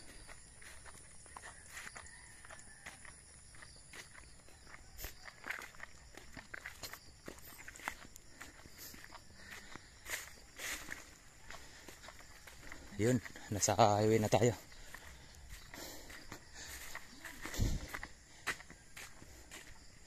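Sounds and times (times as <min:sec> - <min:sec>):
faint footsteps on muddy path: 0:00.0 - 0:20.0.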